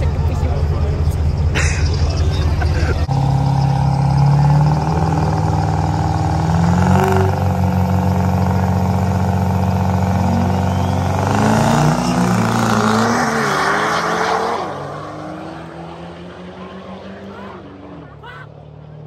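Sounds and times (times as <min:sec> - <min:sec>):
diesel truck engine revving: 0:00.0 - 0:19.0.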